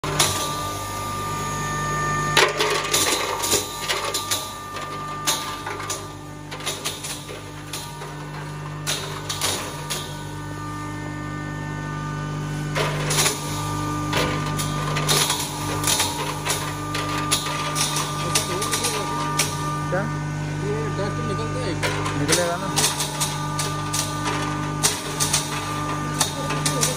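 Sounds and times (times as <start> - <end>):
grinder motor humming: 0.0 - 26.9.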